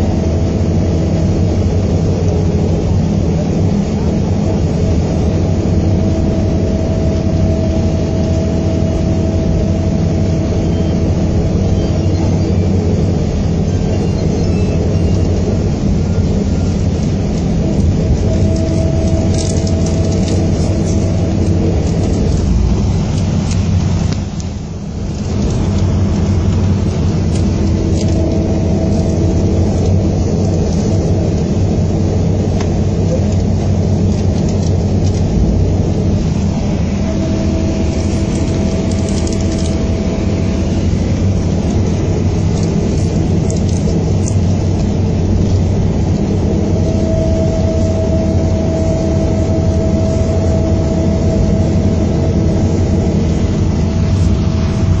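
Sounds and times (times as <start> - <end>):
diesel engine running: 0.0 - 55.0
road and body noise: 0.0 - 55.0
thin whine: 0.0 - 55.0.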